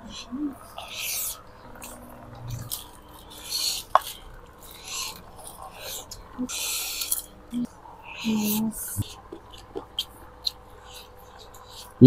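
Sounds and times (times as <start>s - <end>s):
mouth smacking and sucking: 0.0s - 7.2s.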